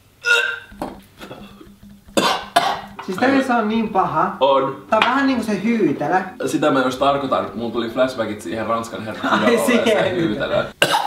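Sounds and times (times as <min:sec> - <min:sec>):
man gagging and retching: 0:00.2 - 0:03.4.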